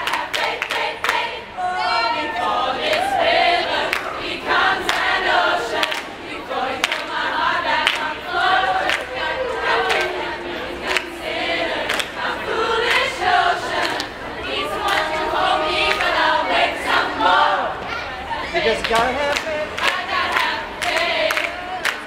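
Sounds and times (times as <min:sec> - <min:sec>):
choir singing unaccompanied: 0:00.0 - 0:22.0
hand claps keeping beat: 0:06.8 - 0:07.1, 0:07.8 - 0:08.1, 0:11.9 - 0:12.2, 0:18.8 - 0:22.0.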